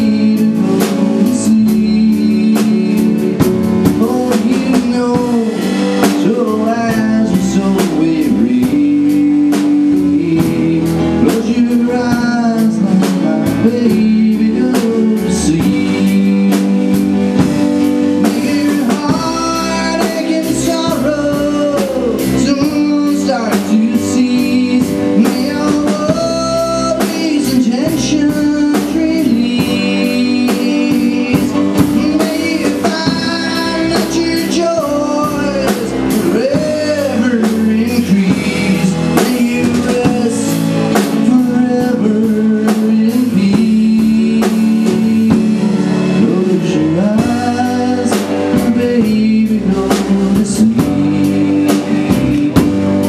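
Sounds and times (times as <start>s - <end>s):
drum kit: 0.0s - 53.0s
guitar: 0.0s - 53.0s
keyboard chords: 0.0s - 53.0s
sliding melody line: 0.0s - 53.0s.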